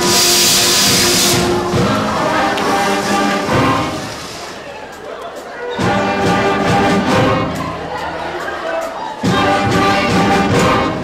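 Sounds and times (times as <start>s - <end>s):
loud sudden hiss: 0.0s - 1.8s, 2.6s - 4.7s.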